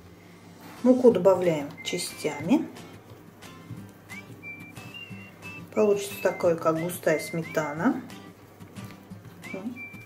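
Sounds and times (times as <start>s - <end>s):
quiet whistle-like background music: 1.4s - 2.7s, 3.5s - 8.3s, 9.4s - 10.0s.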